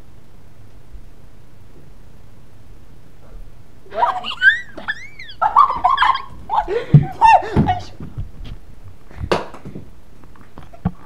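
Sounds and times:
room and handling noise: 0:05.6 - 0:11.0.

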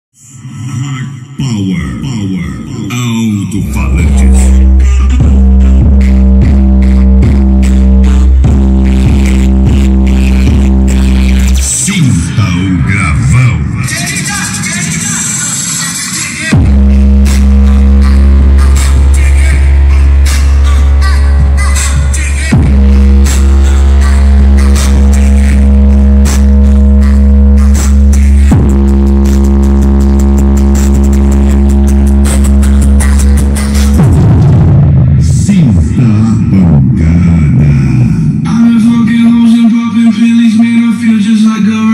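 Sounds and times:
electronic dance music with heavy bass: 0:00.2 - 0:41.9.

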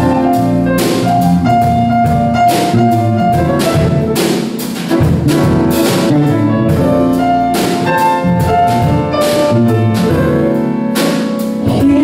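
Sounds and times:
drum kit with cymbal hits: 0:00.0 - 0:12.0
electric bass: 0:00.0 - 0:12.0
grand piano: 0:00.0 - 0:12.0.

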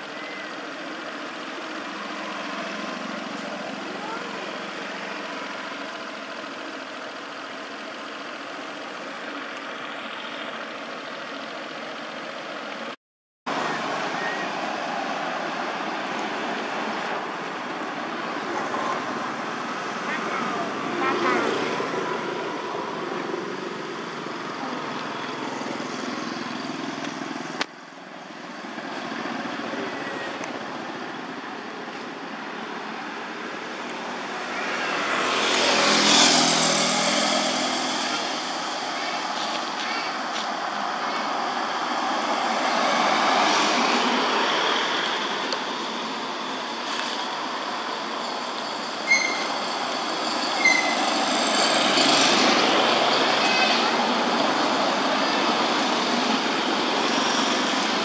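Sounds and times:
motor vehicle passing: 0:34.0 - 0:39.7
faint voices: 0:37.0 - 0:43.2, 0:52.2 - 0:58.0.

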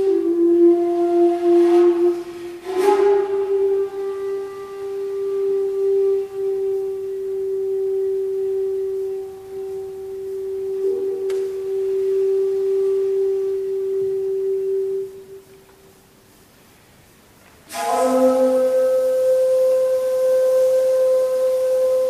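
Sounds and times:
bamboo flute long low note: 0:00.0 - 0:15.9, 0:17.6 - 0:22.0.

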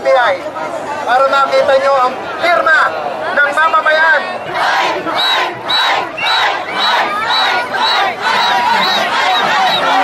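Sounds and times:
crowd chanting: 0:04.2 - 0:10.0.

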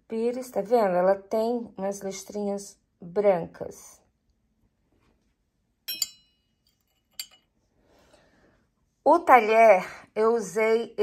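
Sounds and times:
teaspoon clinking on saucer: 0:05.9 - 0:06.4, 0:07.0 - 0:07.4.

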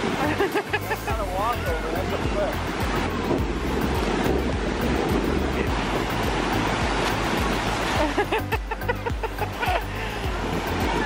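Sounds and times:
music with low bass line: 0:00.0 - 0:11.0
ocean surf breaking: 0:00.0 - 0:11.0
wind on microphone: 0:01.8 - 0:11.0.

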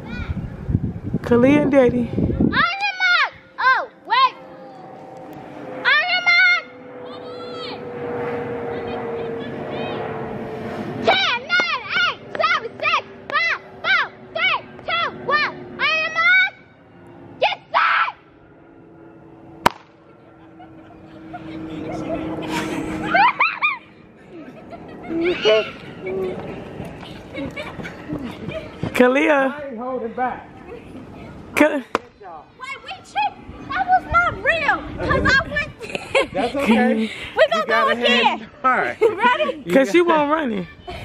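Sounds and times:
steady hum: 0:00.0 - 0:40.1
high-pitched voices shouting and cheering: 0:02.5 - 0:04.7, 0:32.4 - 0:35.8.

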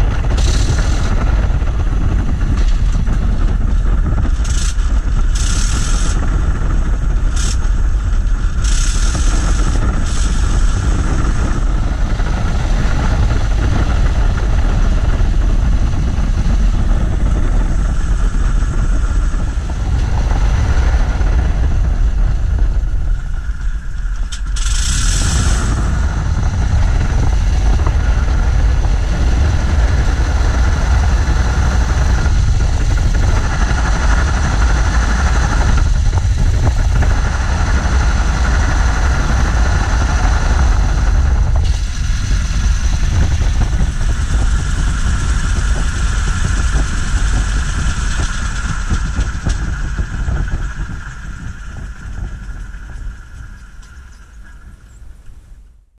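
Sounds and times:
rotary aircraft engine droning: 0:00.0 - 0:55.9.

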